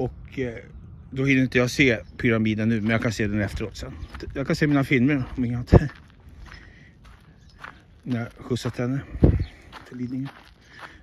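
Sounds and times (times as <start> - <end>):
footsteps on gravel: 2.7 - 11.0.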